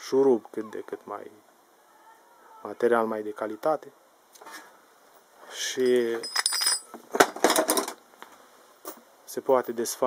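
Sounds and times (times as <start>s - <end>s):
metal parts clinking: 5.8s - 8.0s.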